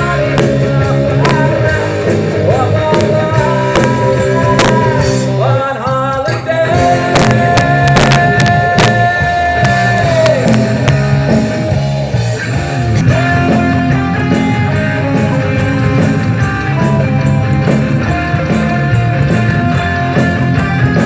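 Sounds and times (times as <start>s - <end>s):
held guitar lead note: 0.0s - 5.5s, 6.8s - 21.0s
live rock band: 0.0s - 21.0s.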